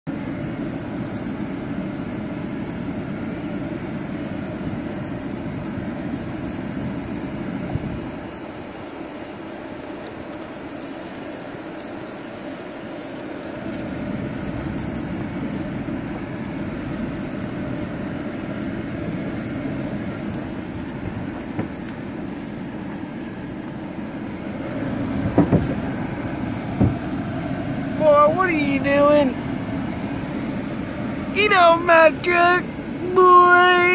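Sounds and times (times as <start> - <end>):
pickup truck engine and tyres: 0.1 - 33.9.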